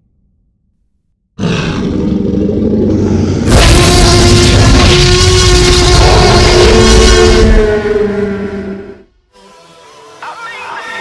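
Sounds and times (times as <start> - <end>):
monster growling roar: 1.4 - 7.6.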